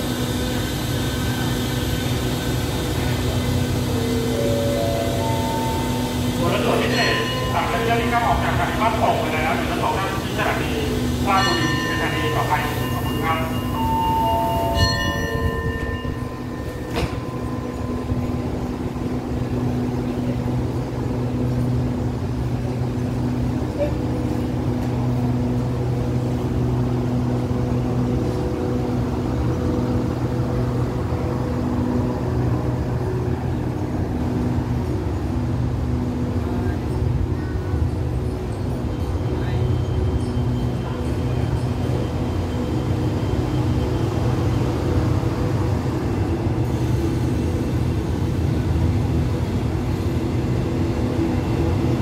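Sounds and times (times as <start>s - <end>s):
train low drone: 0.0s - 52.0s.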